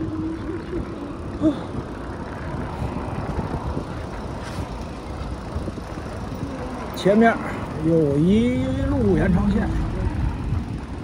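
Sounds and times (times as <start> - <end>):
road traffic: 0.0 - 11.0
wind rumble on microphone: 0.0 - 11.0.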